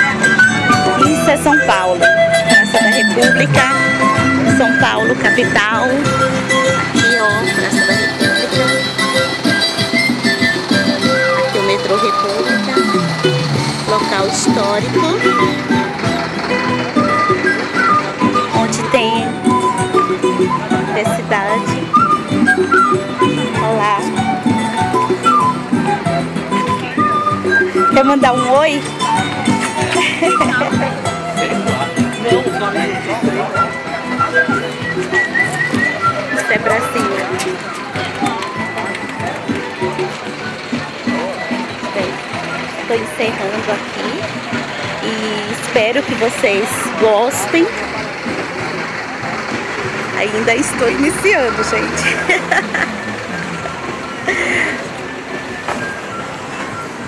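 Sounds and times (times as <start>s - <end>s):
music with held high notes: 0.0s - 57.0s
people talking and laughing: 0.0s - 57.0s
street band playing guitar: 0.0s - 57.0s.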